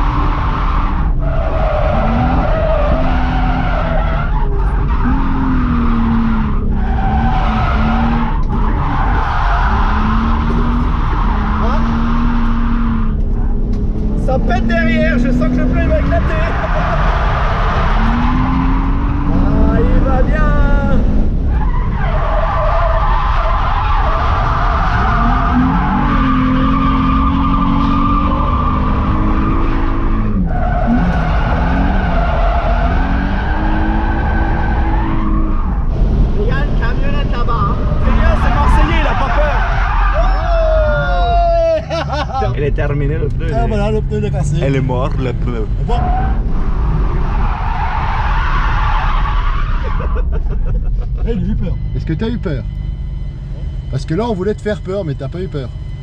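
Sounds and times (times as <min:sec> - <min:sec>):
car engine revving: 0:00.0 - 0:56.0
tyres squealing: 0:36.4 - 0:42.5, 0:43.5 - 0:50.4.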